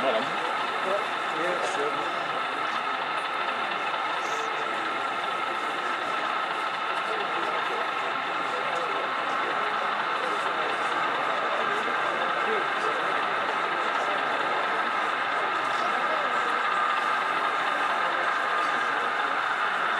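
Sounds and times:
model train engine drone: 0.0 - 19.9
murmur of voices: 0.0 - 19.9.

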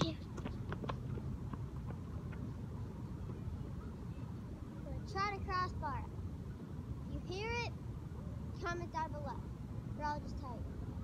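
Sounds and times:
soccer ball touches: 0.0 - 2.4.

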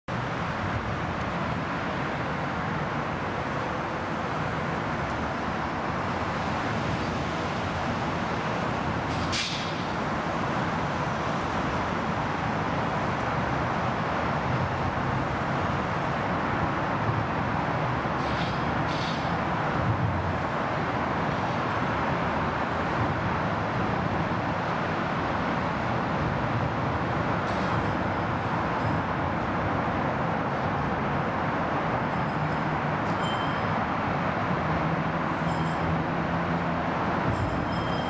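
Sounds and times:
road traffic rumble: 0.1 - 38.0.

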